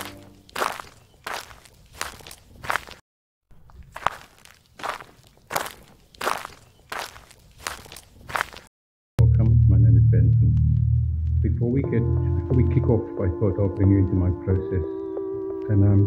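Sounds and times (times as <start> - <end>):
footsteps on pavement: 0.0 - 8.7.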